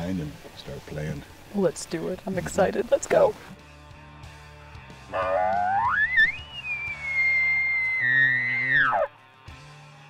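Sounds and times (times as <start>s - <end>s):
elk bugling: 5.0s - 9.2s.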